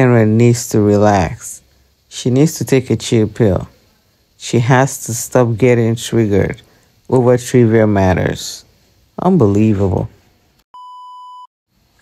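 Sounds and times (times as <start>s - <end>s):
electronic beep: 10.8s - 11.5s.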